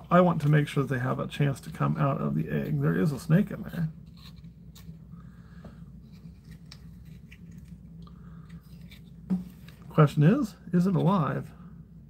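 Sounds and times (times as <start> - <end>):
low steady hum: 0.0 - 12.0.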